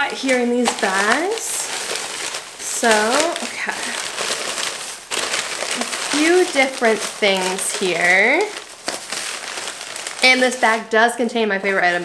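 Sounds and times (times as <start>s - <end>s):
shopping bag crinkling: 0.0s - 12.0s.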